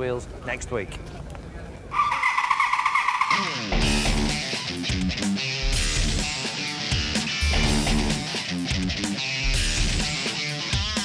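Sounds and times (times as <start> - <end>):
motorbike engine revving: 2.0 - 4.5
rock music with electric guitar: 3.3 - 11.0.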